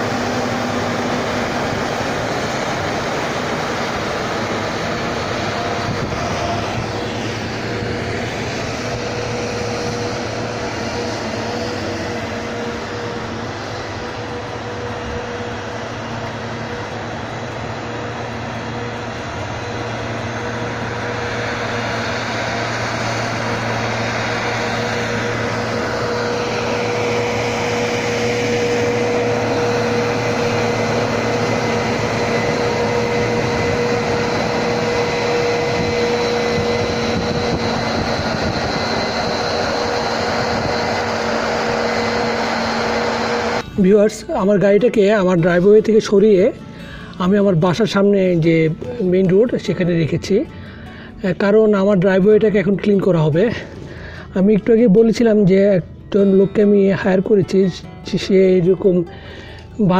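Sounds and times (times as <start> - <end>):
whine falling in pitch: 0.0 - 45.4
tractor engine running: 0.0 - 59.9.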